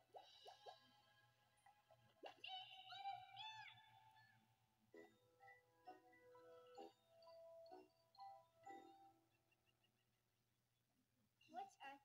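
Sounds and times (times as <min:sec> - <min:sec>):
light background music: 0:00.0 - 0:09.4.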